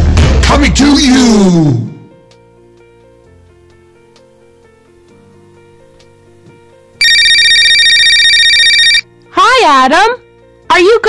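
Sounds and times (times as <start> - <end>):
faint music: 0.4 - 11.0
electronic telephone ringing: 7.0 - 9.1.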